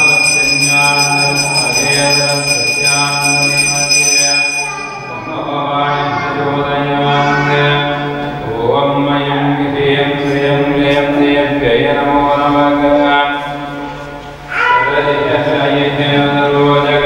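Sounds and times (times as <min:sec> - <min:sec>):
person chanting in held notes: 0:04.6 - 0:13.5.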